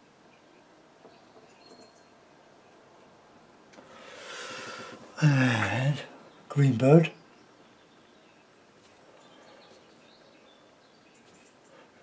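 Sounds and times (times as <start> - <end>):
soft rush of breath: 3.8 - 5.8.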